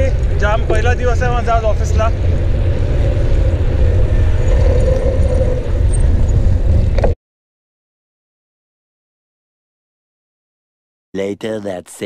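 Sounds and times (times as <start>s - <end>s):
tyre and road noise: 0.0s - 7.2s
wind rumbling on microphone: 0.0s - 7.2s.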